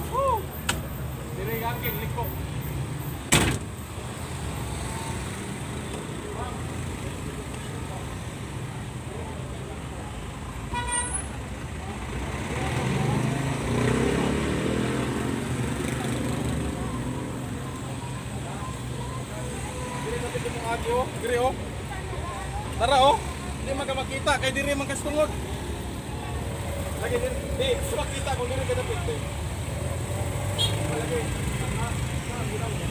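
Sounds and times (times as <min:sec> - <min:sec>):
traffic: 0:00.0 - 0:32.9
vehicle horn toot: 0:10.7 - 0:11.3.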